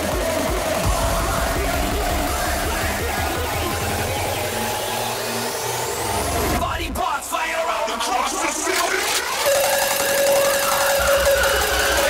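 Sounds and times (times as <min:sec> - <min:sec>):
vocals over dance music: 0:00.0 - 0:05.3, 0:06.4 - 0:09.4
electronic dance music: 0:00.0 - 0:12.0.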